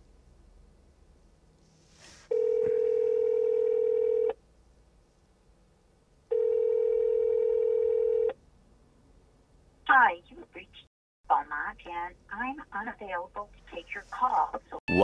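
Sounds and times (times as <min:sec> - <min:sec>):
phone ringback tone: 0:02.3 - 0:04.4, 0:06.3 - 0:08.4.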